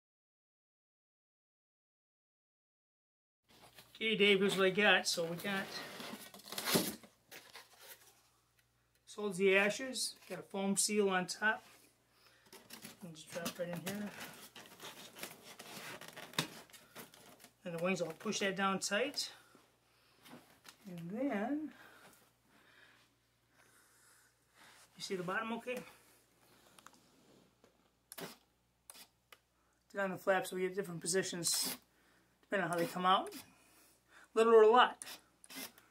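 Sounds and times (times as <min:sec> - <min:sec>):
soft handling noises: 0:03.5 - 0:09.1, 0:11.5 - 0:23.8.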